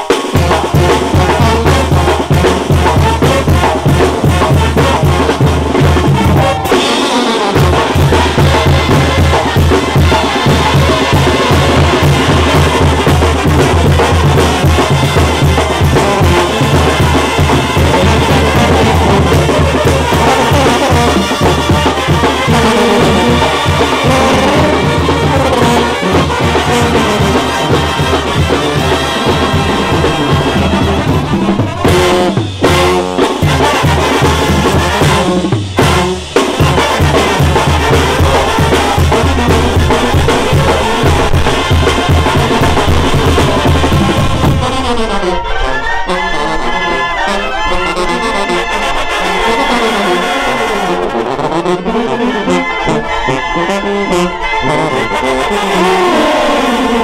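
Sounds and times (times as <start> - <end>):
brass band playing: 0.0 - 57.0.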